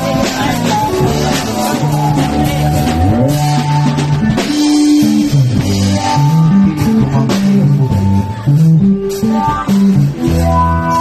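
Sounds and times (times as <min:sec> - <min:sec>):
bass line: 0:00.0 - 0:11.0
drum kit beat: 0:00.0 - 0:11.0
strummed guitar: 0:00.0 - 0:11.0.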